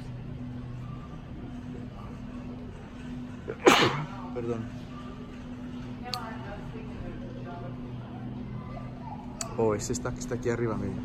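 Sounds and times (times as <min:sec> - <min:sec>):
person sneezing: 0:03.5 - 0:04.2.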